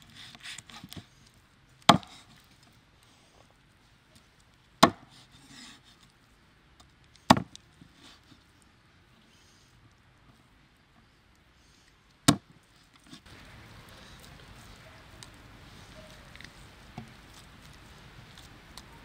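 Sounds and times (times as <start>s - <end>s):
cleaver chopping on wooden board: 1.9s - 2.2s, 4.8s - 5.1s
soft rubbing of meat pieces: 12.8s - 19.0s.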